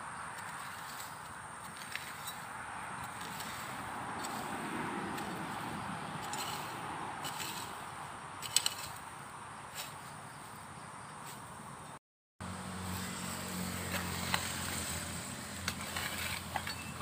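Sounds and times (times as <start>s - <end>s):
steady traffic noise: 0.0s - 17.0s.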